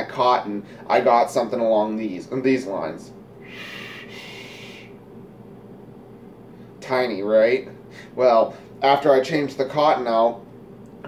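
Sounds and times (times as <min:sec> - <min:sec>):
air hissing through vape: 0:03.4 - 0:05.0.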